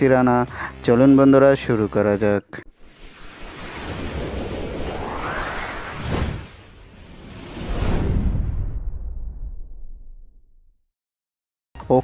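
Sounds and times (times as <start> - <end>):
rising pitch sweep: 2.7 - 8.8
whoosh sound effect: 2.7 - 9.2.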